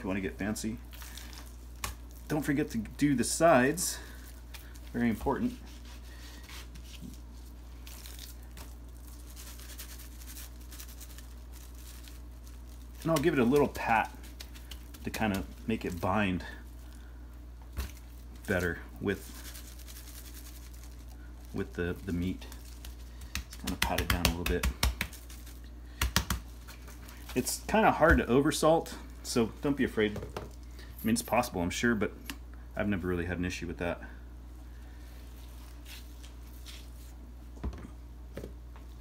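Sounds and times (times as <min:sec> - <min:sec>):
gloved hand rubbing meat: 0:00.6 - 0:17.1, 0:17.8 - 0:27.6, 0:35.0 - 0:37.2.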